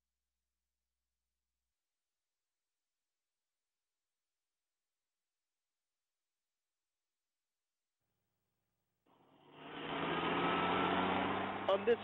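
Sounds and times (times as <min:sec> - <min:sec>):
bulldozer engine running: 0:09.1 - 0:12.0
man speaking: 0:11.7 - 0:12.0.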